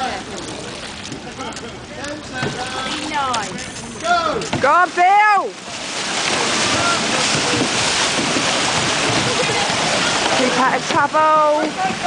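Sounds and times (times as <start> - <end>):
paddles splashing water: 0.0 - 12.0.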